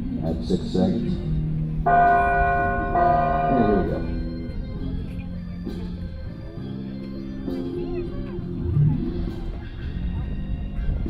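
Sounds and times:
organ music with held chords: 1.4 - 7.5.

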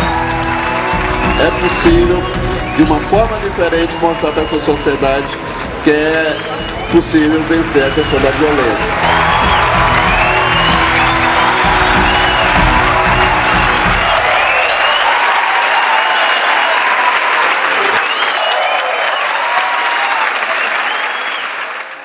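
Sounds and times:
audience applauding: 0.0 - 22.0
cheers and whistles: 0.0 - 22.0
music with bass line: 6.6 - 14.2.

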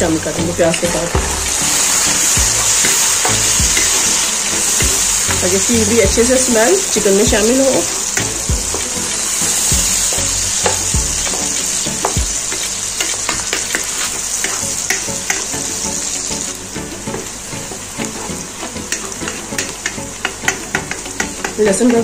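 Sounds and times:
onions sizzling in hot oil: 0.0 - 22.0
wooden spoon scraping a pan: 0.7 - 16.2, 17.1 - 22.0.

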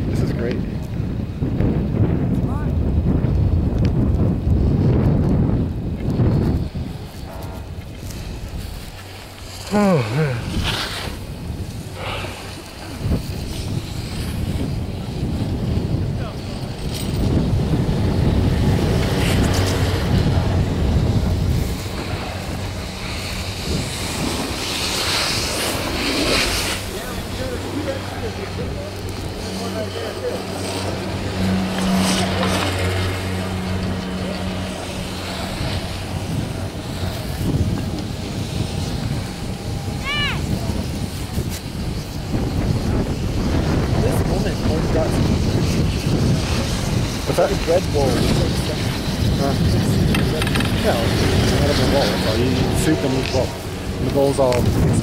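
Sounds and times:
wind rumbling on microphone: 0.0 - 55.0.

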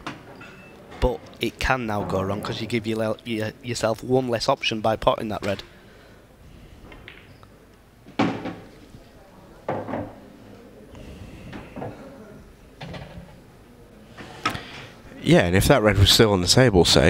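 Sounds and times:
cue striking pool balls: 6.9 - 7.4
pool balls knocking: 6.9 - 7.4, 8.0 - 8.8.

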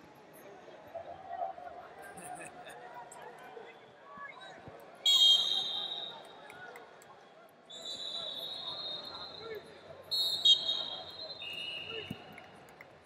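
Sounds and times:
arena crowd chatter: 0.0 - 13.0
referee's whistle blast: 5.1 - 6.1, 10.1 - 12.1.

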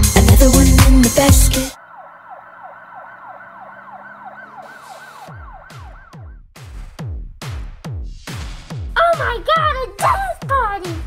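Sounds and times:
falling synth sweeps: 1.7 - 6.3
warbling siren-like synth tone: 1.7 - 6.4.

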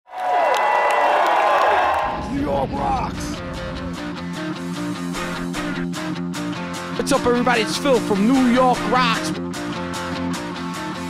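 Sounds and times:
crowd cheering and whooping: 0.1 - 2.5.

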